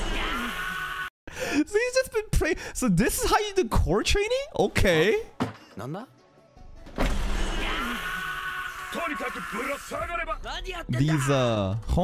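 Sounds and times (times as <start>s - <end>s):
background music: 3.9s - 12.0s.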